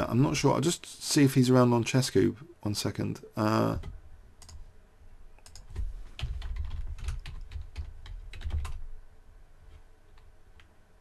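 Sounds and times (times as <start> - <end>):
computer keyboard typing: 3.7 - 4.6, 5.4 - 8.9.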